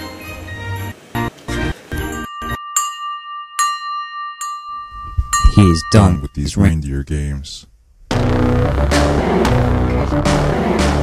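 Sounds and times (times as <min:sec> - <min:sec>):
high bell-like chime: 0:01.9 - 0:06.7.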